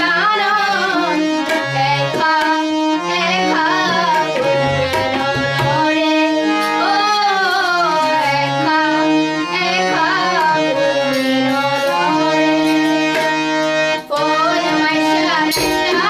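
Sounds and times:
woman singing folk song: 0.0s - 4.4s, 5.7s - 12.2s, 14.0s - 16.0s
tabla: 0.0s - 16.0s
sustained instrumental notes: 0.6s - 16.0s.

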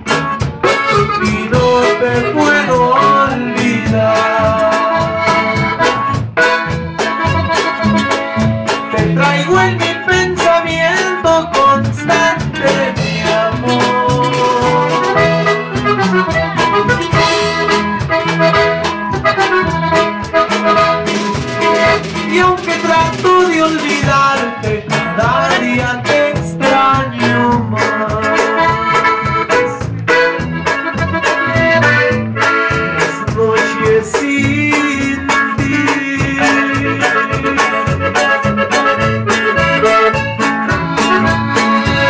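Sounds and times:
button accordion melody: 0.0s - 42.0s
drum kit beat: 0.0s - 42.0s
electric bass: 0.0s - 42.0s
strummed acoustic guitar: 0.0s - 42.0s.

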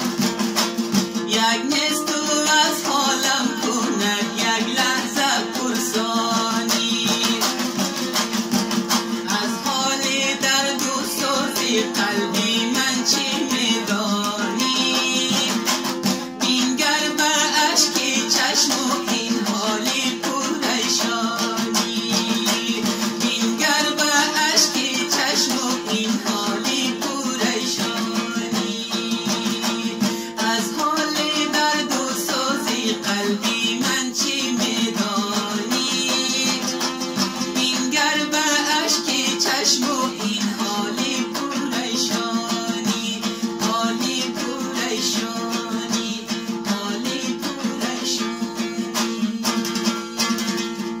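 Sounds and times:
long-necked lute strummed rapidly: 0.0s - 51.0s
man singing: 1.1s - 8.2s, 9.0s - 50.7s.

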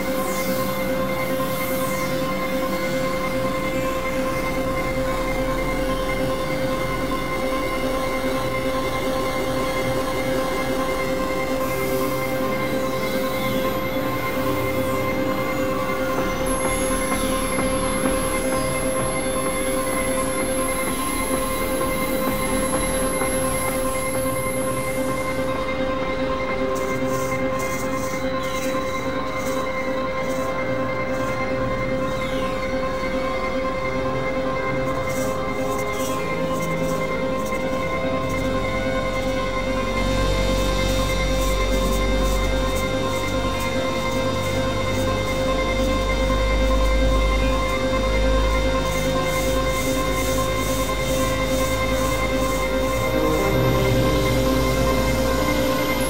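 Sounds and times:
synthesizer noise drone: 0.0s - 56.0s.

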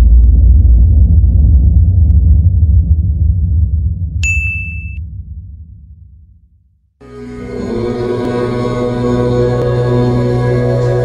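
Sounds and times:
deep low rumble: 0.0s - 11.0s
bright high ding: 4.2s - 5.0s.

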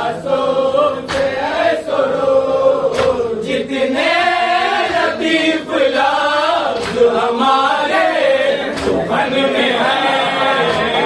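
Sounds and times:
men chanting devotional elegy: 0.0s - 11.0s.

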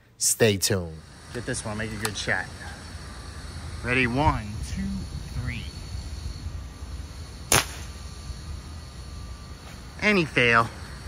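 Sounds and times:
low background rumble: 1.0s - 11.0s
air rifle shot: 7.5s - 8.0s.

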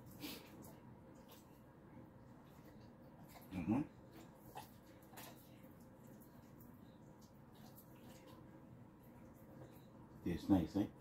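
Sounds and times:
dogs licking and chewing: 0.0s - 10.6s.

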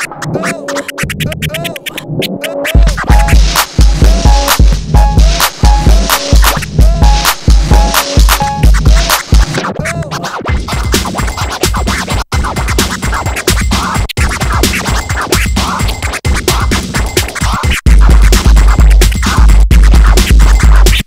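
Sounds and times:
dj music with kick drum: 0.0s - 21.0s
record scratching: 0.0s - 21.0s.

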